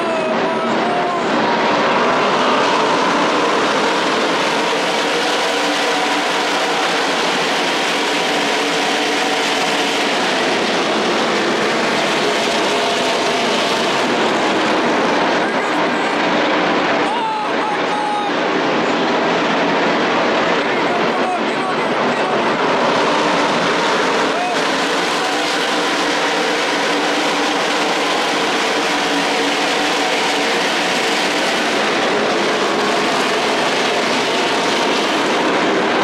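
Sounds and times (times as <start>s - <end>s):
racing engines roaring: 0.0s - 36.0s.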